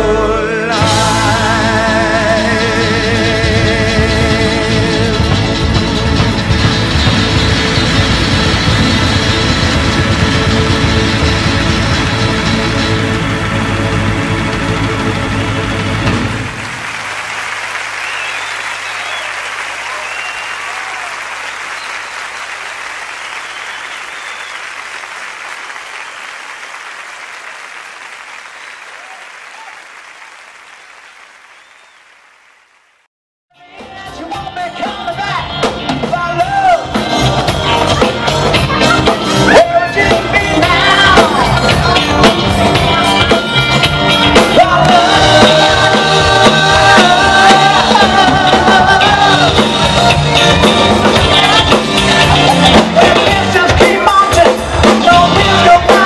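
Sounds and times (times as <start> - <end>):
pop-rock music playing loudly: 0.0 - 16.7, 33.6 - 56.0
crowd applauding and cheering: 5.1 - 33.1, 36.6 - 56.0.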